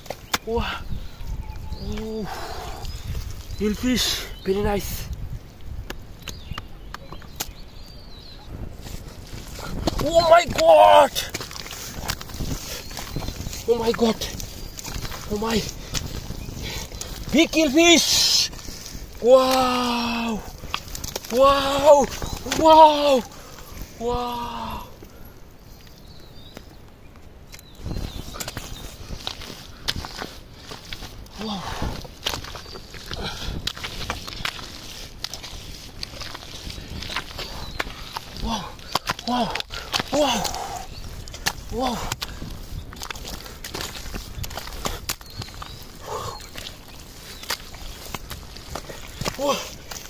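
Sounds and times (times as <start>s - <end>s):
hands squelching in wet mud: 0.0s - 4.4s, 8.8s - 24.8s, 27.5s - 50.0s.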